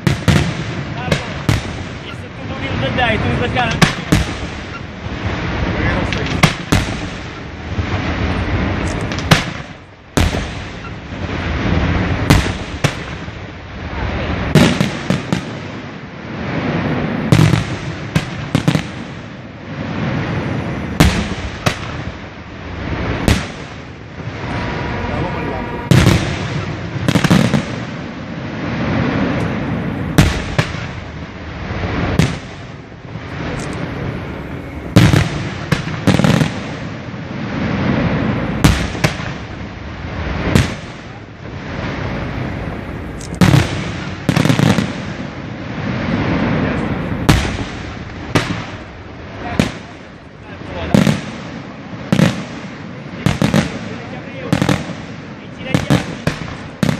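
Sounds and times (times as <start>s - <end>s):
continuous fireworks display noise: 0.0s - 56.9s.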